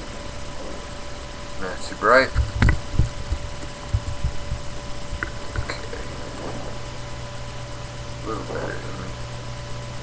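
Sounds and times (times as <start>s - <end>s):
faint electrical whine: 0.0s - 10.0s
microphone handling bumps: 2.3s - 6.9s.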